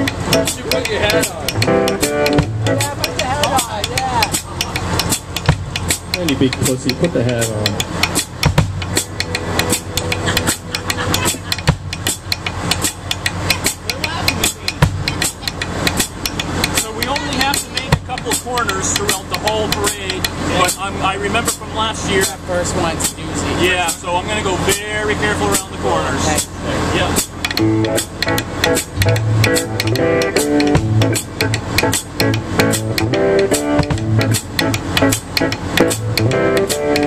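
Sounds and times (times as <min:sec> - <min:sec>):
people talking: 0:00.0 - 0:01.6, 0:02.7 - 0:04.8, 0:06.1 - 0:07.8, 0:10.2 - 0:11.7, 0:13.7 - 0:15.8, 0:16.7 - 0:27.2
drum kit hits: 0:00.0 - 0:24.9, 0:27.0 - 0:37.0
low engine hum: 0:00.0 - 0:37.0.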